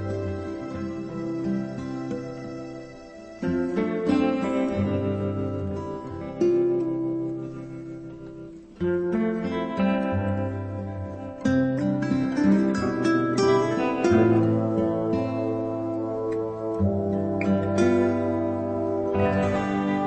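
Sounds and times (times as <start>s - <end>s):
plucked string chords: 0.0s - 20.0s.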